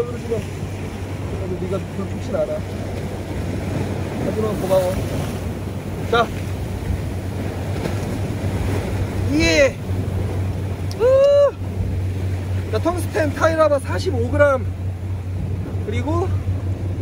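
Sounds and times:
low continuous rumble: 0.0 - 17.0
surf on rocky shore: 0.0 - 17.0
wind: 0.0 - 17.0.

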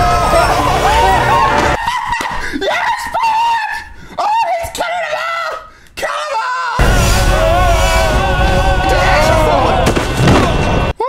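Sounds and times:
person screaming: 6.2 - 9.9.

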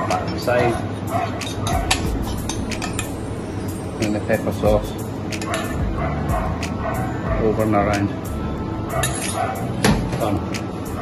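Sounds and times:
low steady hum: 0.7 - 7.5.

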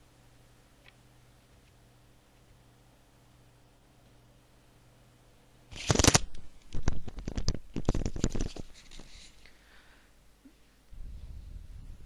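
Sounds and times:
rustling handling noise: 5.7 - 9.5.

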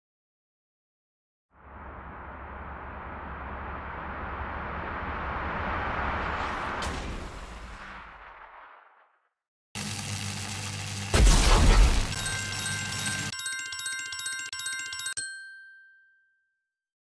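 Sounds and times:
deep boom: 1.6 - 8.8
crackling electric rush: 1.6 - 9.0, 9.8 - 12.2
bright twinkling chimes: 12.1 - 16.6
ringing tone: 12.1 - 16.8.

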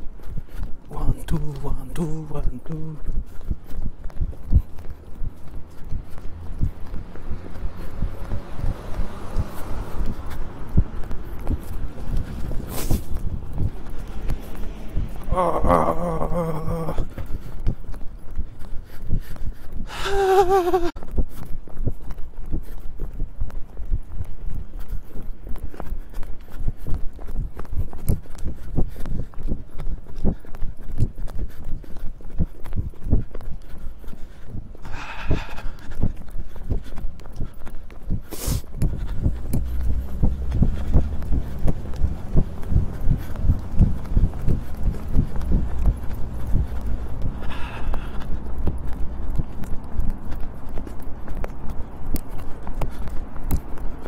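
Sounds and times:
running footsteps on pavement: 0.0 - 54.0
low rumble: 4.2 - 17.1, 38.9 - 49.8
microphone jostling: 10.8 - 14.0.

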